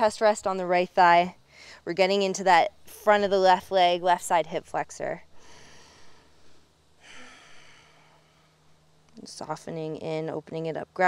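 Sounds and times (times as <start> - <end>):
woman exhaling breathily: 7.0 - 8.4.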